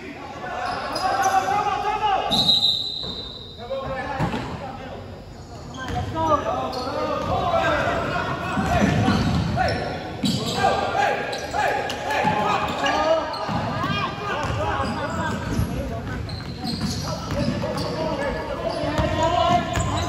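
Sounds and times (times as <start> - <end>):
echoing voices: 0.0 - 2.5, 3.5 - 20.0.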